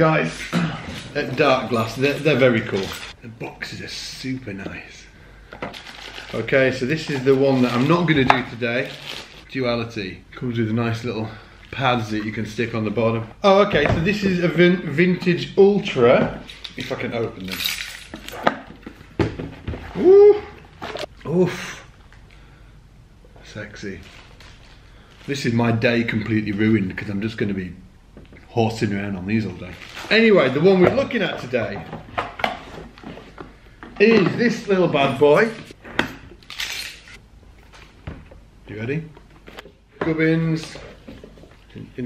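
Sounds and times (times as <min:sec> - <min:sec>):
rustling: 0:29.3 - 0:33.7.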